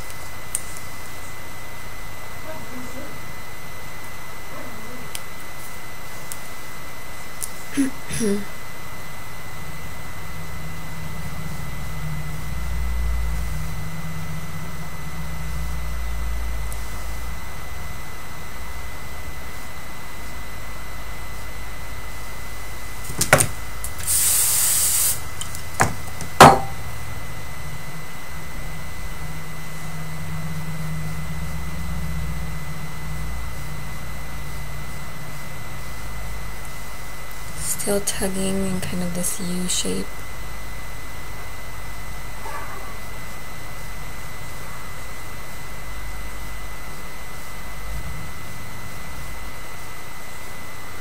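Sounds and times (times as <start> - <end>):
faint high whine: 0.0 - 51.0
low room hum: 0.0 - 51.0
short hiss: 24.0 - 25.2.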